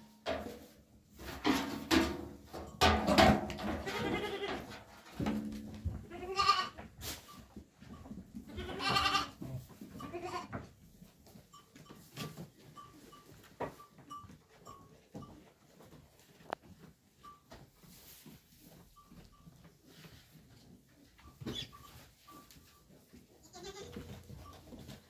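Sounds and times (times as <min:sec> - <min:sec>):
goats bleating: 0:03.8 - 0:04.7, 0:06.1 - 0:06.8, 0:08.5 - 0:09.4, 0:10.0 - 0:10.5, 0:23.4 - 0:24.1.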